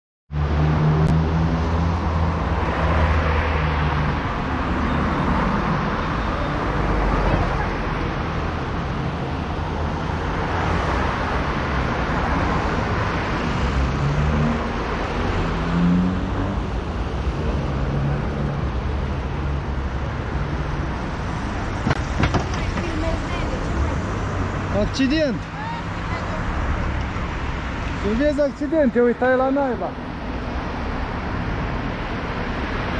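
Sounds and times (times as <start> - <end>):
cars and trucks passing: 0.3 - 32.9.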